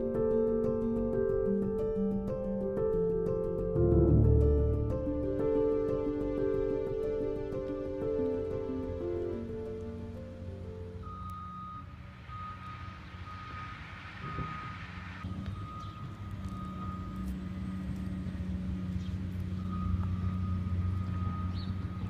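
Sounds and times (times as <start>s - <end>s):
low engine hum: 0.0s - 22.0s
reversing alarm beeping: 11.0s - 18.1s, 19.6s - 22.0s.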